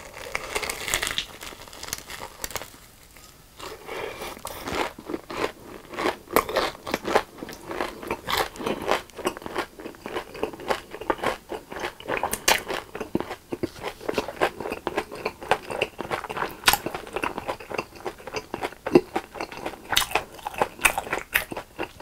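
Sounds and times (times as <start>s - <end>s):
chewing crunchy fried food: 0.0s - 22.0s.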